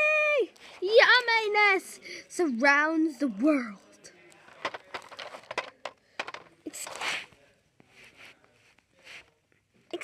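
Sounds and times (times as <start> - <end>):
plastic toys clicking and knocking: 4.4 - 7.0.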